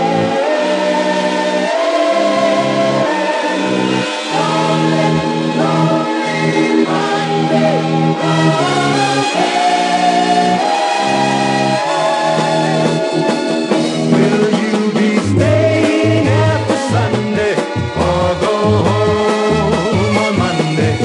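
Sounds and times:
band playing: 0.0 - 21.0
group singing in harmony: 0.0 - 21.0.

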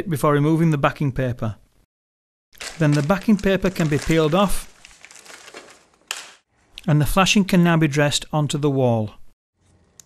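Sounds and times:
backing paper peeling off adhesive: 2.6 - 6.4.

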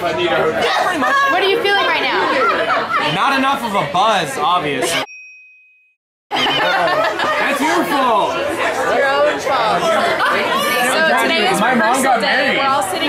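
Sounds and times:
voices chattering: 0.0 - 5.1, 6.3 - 13.0
short high ding: 4.8 - 6.0.

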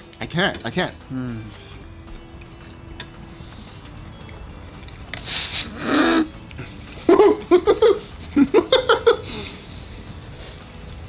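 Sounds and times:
men exhaling and moaning: 5.2 - 8.6, 9.2 - 10.7
men laughing: 5.6 - 9.8.

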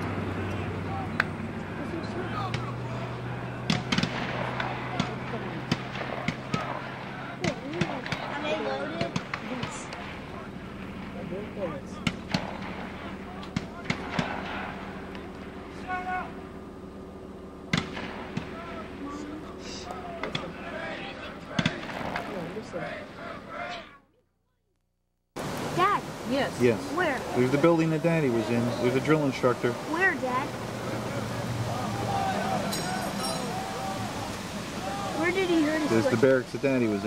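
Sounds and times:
steady low hum: 0.0 - 37.0
rifle shots: 3.6 - 10.3, 12.0 - 15.3, 17.7 - 19.0, 21.5 - 22.8.

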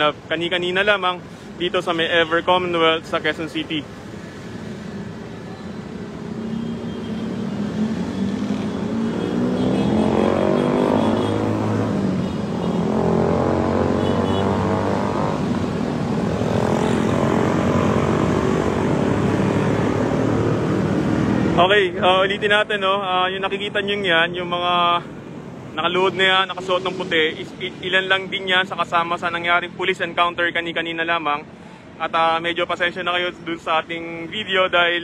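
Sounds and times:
vehicle engine accelerating: 7.6 - 12.2.

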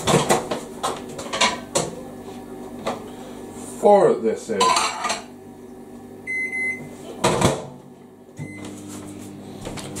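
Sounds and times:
microwave running hum: 0.0 - 10.0
microwave beep: 6.2 - 7.0, 8.4 - 8.9.

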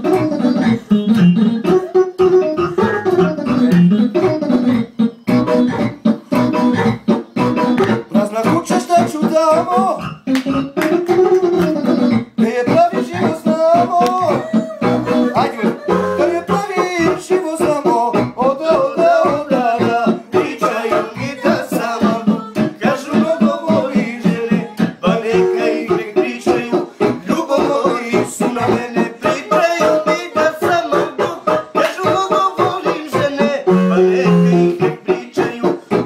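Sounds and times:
guitar playing fast rhythm: 0.0 - 36.0.

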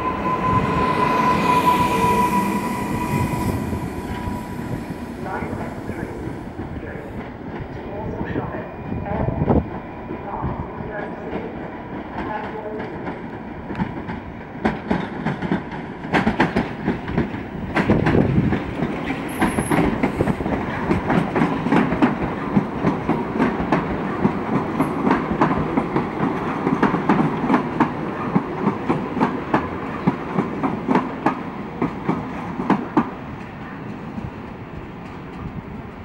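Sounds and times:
train running rumble: 9.2 - 35.8
train wheels clicking over rail joints: 12.2 - 35.6.

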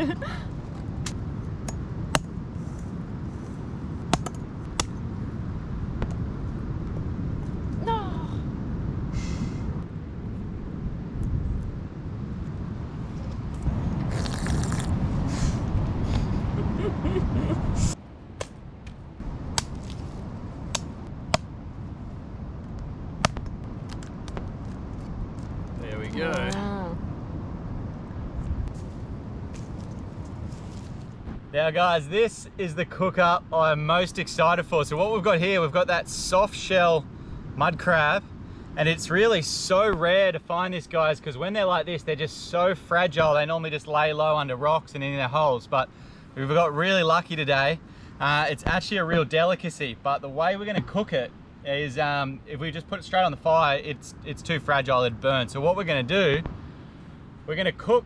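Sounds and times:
steady low rumble: 0.0 - 58.0
machete chopping coconut: 4.1 - 5.0.

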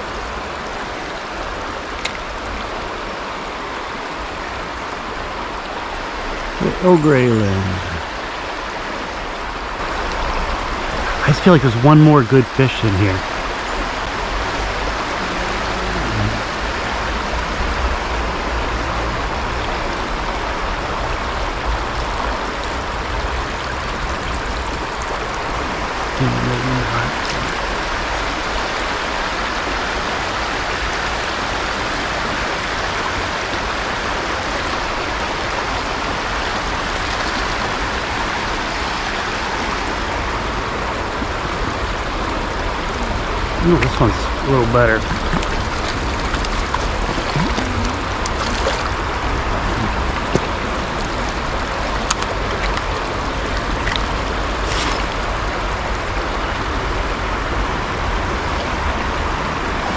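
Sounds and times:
river rushing over stones: 0.0 - 59.9.

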